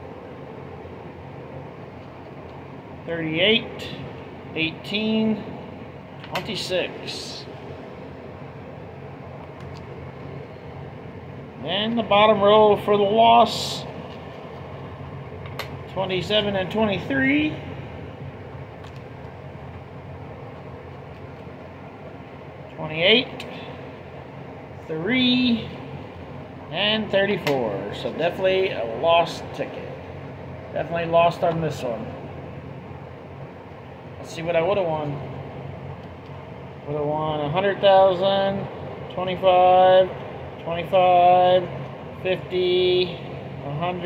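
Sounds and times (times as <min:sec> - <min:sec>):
machine hum with hiss: 0:00.0 - 0:44.0.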